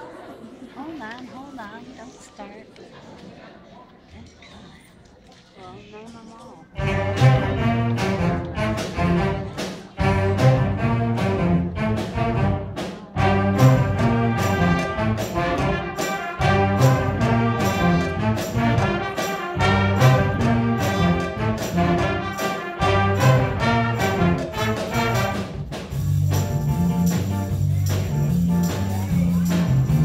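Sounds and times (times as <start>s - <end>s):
trumpets and trombones: 6.8s - 25.8s
drum kit beat: 6.8s - 30.0s
electric bass guitar: 23.3s - 30.0s.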